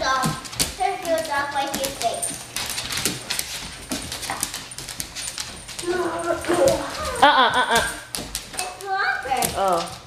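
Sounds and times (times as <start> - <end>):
dogs scuffling on hard floor: 0.0 - 10.0.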